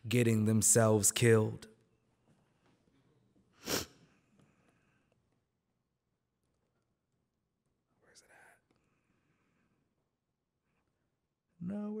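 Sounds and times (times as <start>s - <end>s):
faint whispered mutter: 7.9s - 9.0s.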